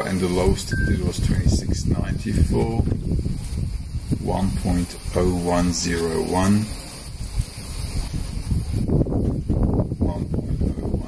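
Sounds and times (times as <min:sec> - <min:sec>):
low rumbling on microphone: 0:00.0 - 0:11.0.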